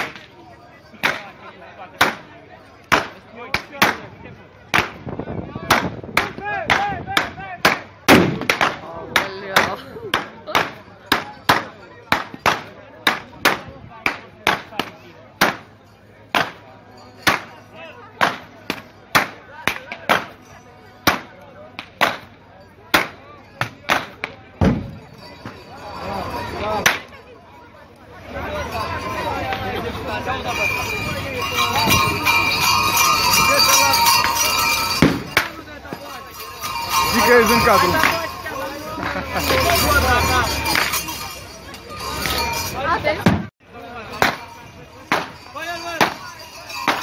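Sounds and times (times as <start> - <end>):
crowd murmur: 0.0 - 47.0.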